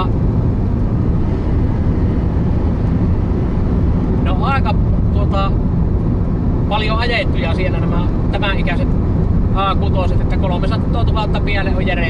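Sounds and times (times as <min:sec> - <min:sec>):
in-cabin car engine and road noise: 0:00.0 - 0:12.0.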